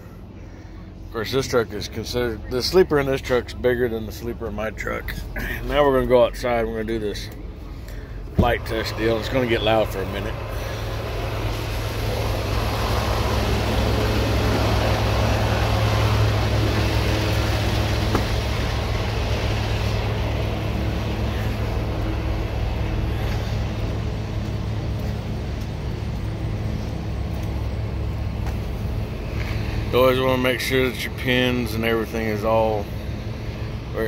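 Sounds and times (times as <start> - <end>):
truck diesel engine idling: 0.0 - 34.0
rush of noise: 7.6 - 30.2.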